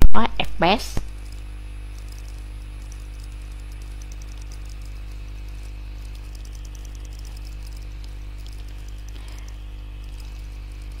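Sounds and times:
mains hum: 0:00.0 - 0:11.0
faint crackle: 0:01.0 - 0:11.0.

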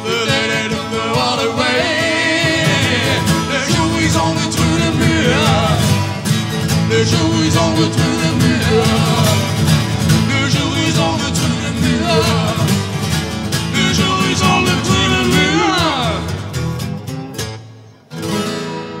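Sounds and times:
folk song: 0:00.0 - 0:18.9
strummed acoustic guitars: 0:00.0 - 0:19.0.

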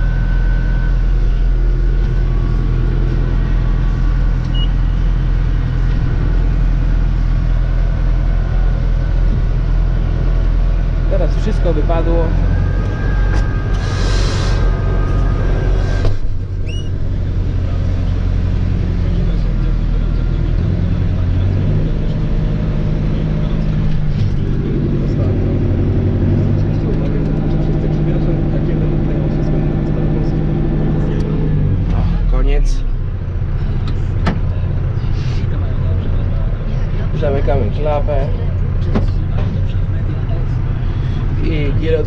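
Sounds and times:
tractor engine running: 0:00.0 - 0:42.0.

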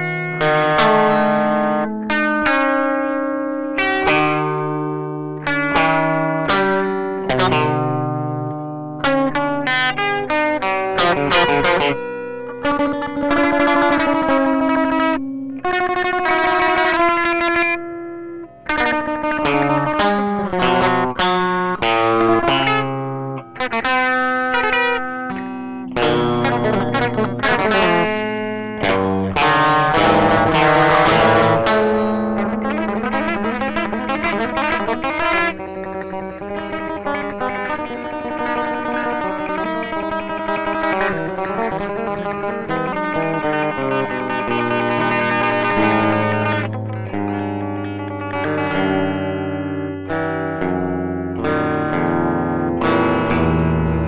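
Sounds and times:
guitar improvisation: 0:00.0 - 0:54.0.

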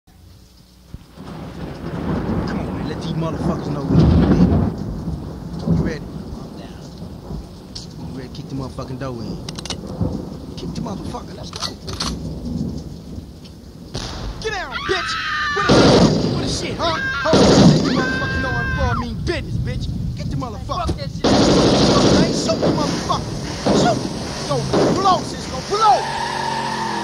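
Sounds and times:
rain hissing: 0:00.1 - 0:27.0
low rolling thunder: 0:01.0 - 0:27.0
sharp click: 0:09.5 - 0:09.8, 0:11.5 - 0:12.2
low rumble: 0:15.7 - 0:25.8.

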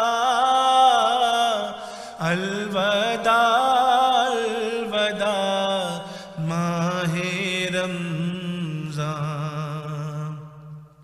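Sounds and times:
man chanting: 0:00.0 - 0:10.9.

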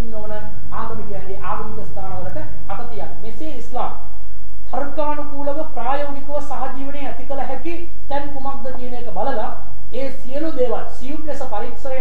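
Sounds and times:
person talking: 0:00.0 - 0:04.1, 0:04.7 - 0:12.0.

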